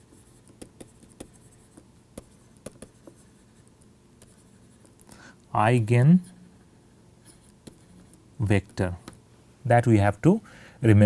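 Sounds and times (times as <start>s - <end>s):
stylus tapping and scratching on tablet: 0.0s - 5.2s, 7.2s - 9.2s.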